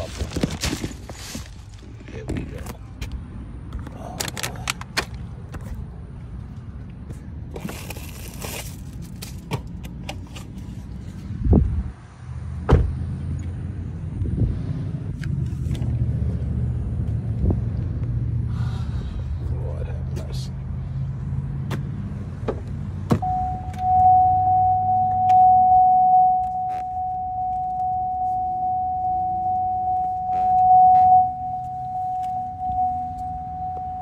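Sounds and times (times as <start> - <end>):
car engine hum: 0.0 - 34.0
handling and knocking inside car: 12.7 - 13.0, 22.4 - 24.0.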